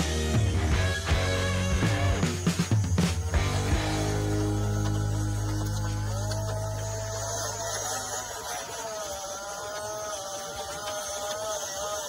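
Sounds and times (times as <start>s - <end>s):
toy truck electric motor whine: 0.1s - 12.0s.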